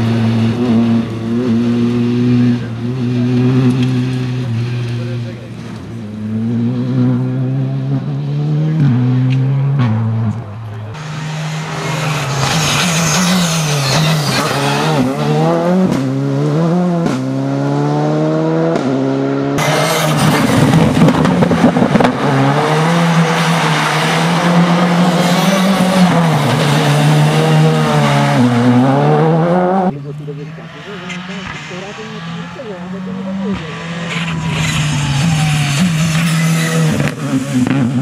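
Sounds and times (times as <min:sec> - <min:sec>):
rally car engine at full throttle: 0:00.0 - 0:38.0.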